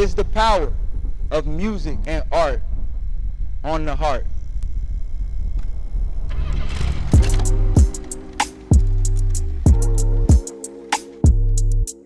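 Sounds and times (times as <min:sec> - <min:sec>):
steady low rumble: 0:00.0 - 0:10.3.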